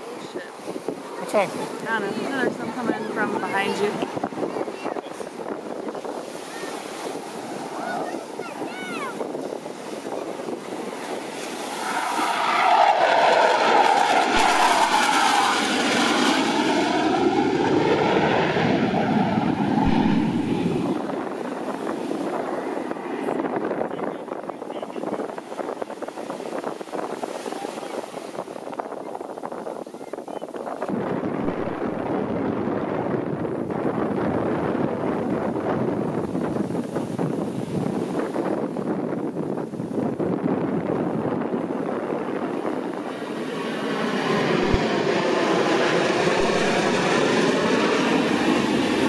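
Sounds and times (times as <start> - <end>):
jet engines flying past: 0.0 - 49.0.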